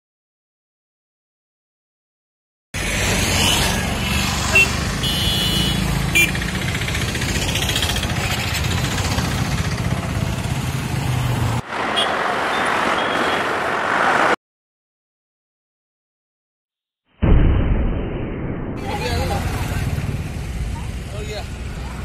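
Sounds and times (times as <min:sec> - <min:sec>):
hissy traffic noise: 0:02.8 - 0:14.4
street traffic: 0:02.8 - 0:14.4, 0:18.8 - 0:22.0
short horn toot: 0:04.5 - 0:06.3
motorcycle engine running: 0:05.0 - 0:11.0.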